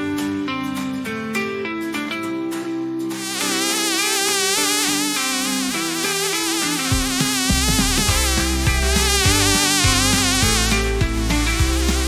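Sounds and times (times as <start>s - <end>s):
background music: 3.1s - 12.0s
fly buzzing: 3.2s - 12.0s.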